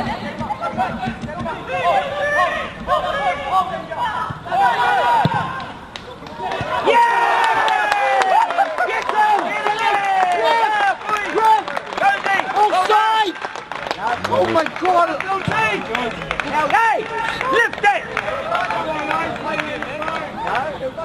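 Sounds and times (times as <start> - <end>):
players shouting: 0.0 - 13.4, 14.0 - 21.0.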